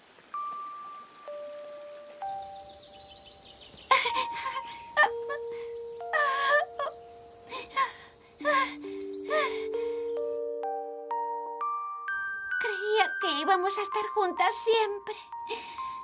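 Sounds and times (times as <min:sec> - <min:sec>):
slow soft background music: 0:00.2 - 0:16.0
girl sobbing and wailing: 0:03.9 - 0:10.4.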